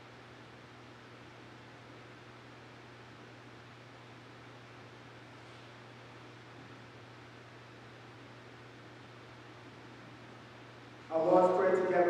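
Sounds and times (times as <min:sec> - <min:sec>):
low constant hum: 0:00.0 - 0:12.0.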